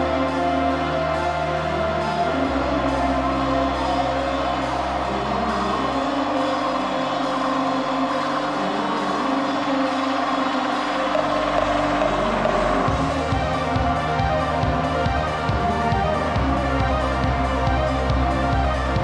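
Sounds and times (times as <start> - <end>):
rock band music: 0.0 - 19.0.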